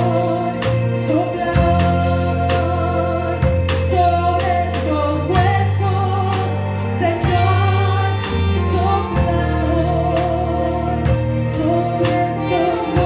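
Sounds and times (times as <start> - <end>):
bass line: 0.0 - 13.0
drum kit beat: 0.0 - 13.0
gospel band with singers: 0.0 - 13.0.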